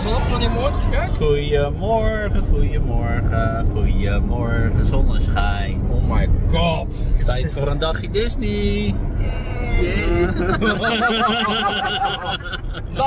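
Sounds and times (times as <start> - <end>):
people talking: 0.0 - 9.0, 9.6 - 13.0
car cabin road and engine noise: 0.0 - 13.0.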